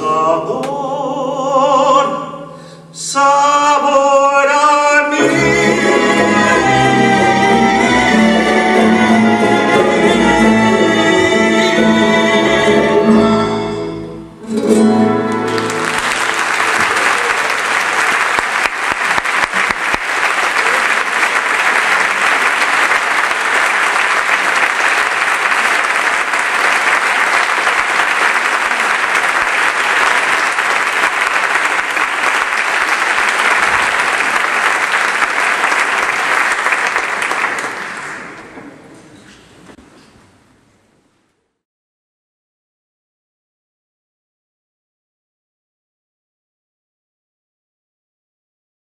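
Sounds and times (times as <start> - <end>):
chamber orchestra with guitar: 5.2 - 16.2
audience applauding: 15.3 - 38.6.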